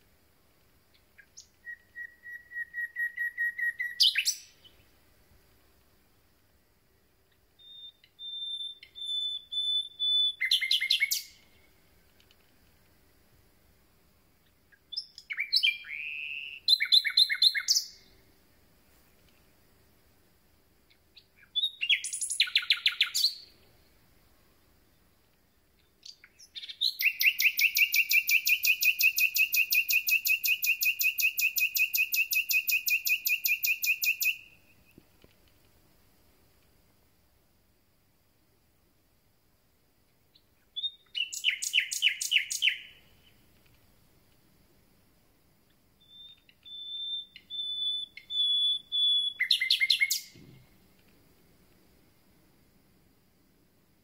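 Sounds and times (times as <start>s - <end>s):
nightingale singing: 0.8s - 5.1s, 6.8s - 12.4s, 14.4s - 18.4s, 20.8s - 35.2s, 40.2s - 43.6s, 45.6s - 51.0s.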